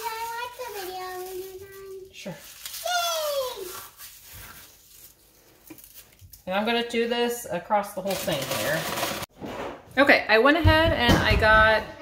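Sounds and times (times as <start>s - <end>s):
girl's voice: 0.0s - 2.2s, 2.8s - 3.8s.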